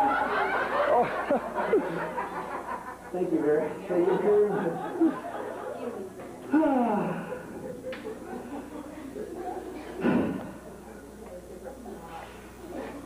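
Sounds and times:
people laughing: 0.0 - 13.0.

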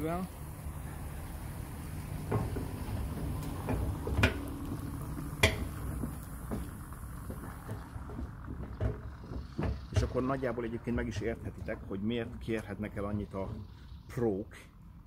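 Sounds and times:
steady low hum: 0.0 - 15.0
sharp knocks and clicks: 2.2 - 10.4.

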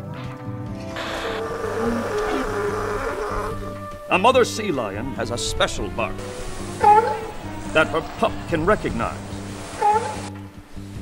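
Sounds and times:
background music: 0.0 - 11.0
buzzing hissy noise: 1.0 - 3.8.

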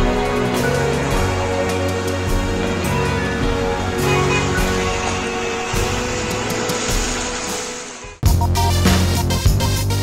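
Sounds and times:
vehicle driving through water: 0.0 - 8.2
background music: 0.0 - 10.0.

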